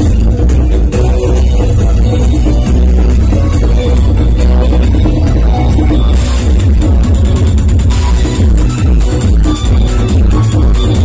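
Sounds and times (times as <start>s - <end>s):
live band music through pa: 0.0s - 11.0s.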